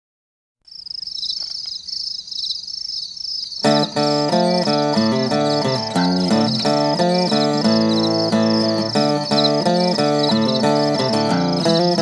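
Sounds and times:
crickets chirping: 0.7 - 12.0
country song with guitar: 3.6 - 12.0.

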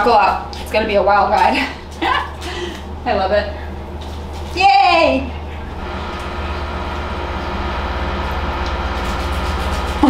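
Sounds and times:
low mechanical rumble with flutter: 0.0 - 10.0.

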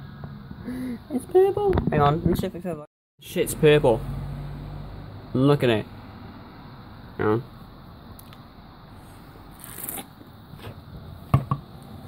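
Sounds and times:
high scraping rustle: 9.0 - 10.8.

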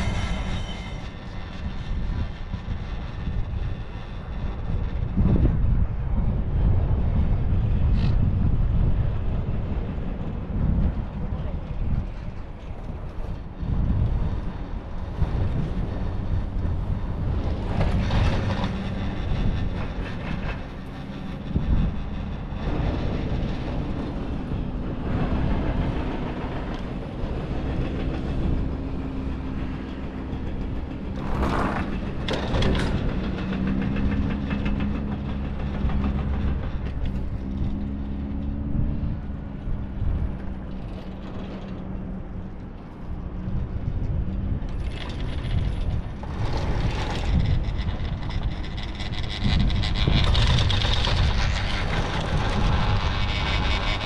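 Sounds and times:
hum: 0.0 - 46.5
chairlift rumble: 0.0 - 54.0
wind on microphone: 0.0 - 54.0
chair clacking over sheave wheels: 25.8 - 38.4, 44.8 - 54.0.

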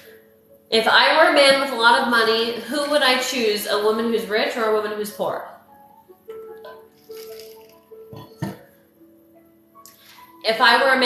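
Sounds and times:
faint background music: 0.0 - 11.0
ice rattling in glass: 7.0 - 7.8.

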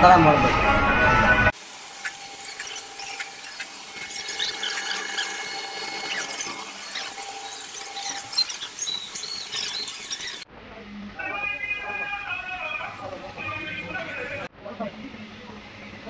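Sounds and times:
machine whining: 0.0 - 10.5
reels squeaking: 1.9 - 10.4.

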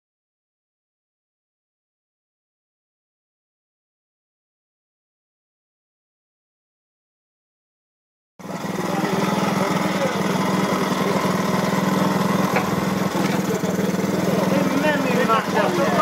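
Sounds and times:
small engine running steadily: 8.4 - 16.0.

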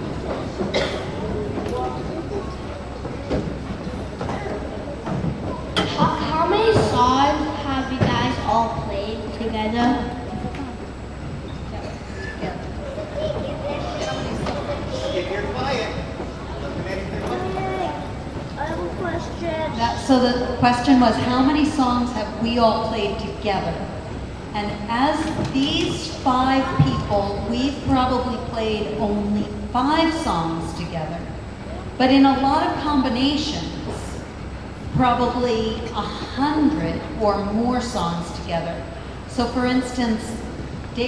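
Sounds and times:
audience murmur: 0.0 - 8.0, 8.7 - 21.2
indistinct voices talking: 0.0 - 34.3.

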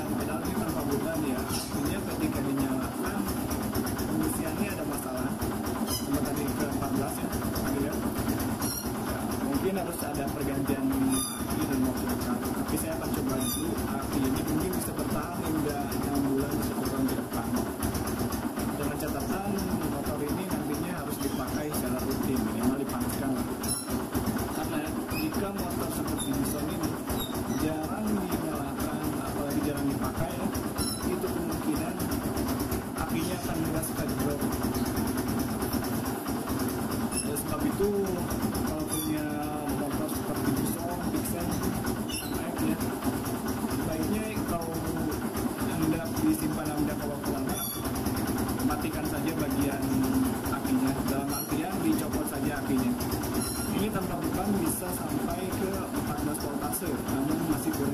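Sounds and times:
motorcycle engine idling: 0.0 - 57.9.

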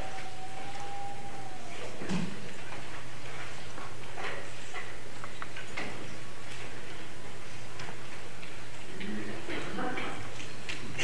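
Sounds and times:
steady low hum: 0.0 - 5.3.

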